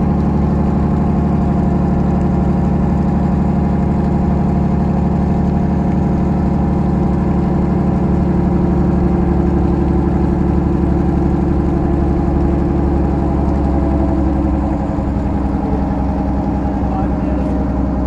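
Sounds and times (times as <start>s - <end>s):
boat engine running: 0.0s - 18.0s.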